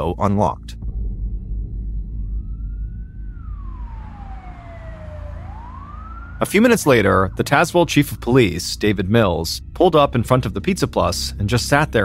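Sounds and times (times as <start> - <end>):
low steady rumble: 0.0 - 12.0
police siren wailing: 2.3 - 9.4.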